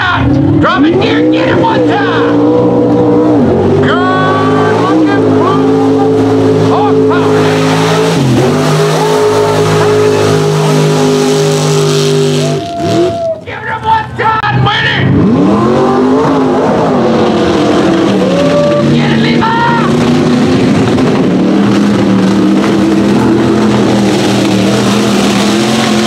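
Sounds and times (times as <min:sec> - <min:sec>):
truck engine at full throttle: 0:00.0 - 0:26.0.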